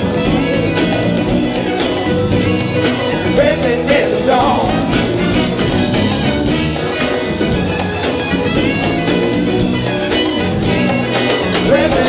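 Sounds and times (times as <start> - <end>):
brass lines: 0.0 - 12.0
live funk band: 0.0 - 12.0.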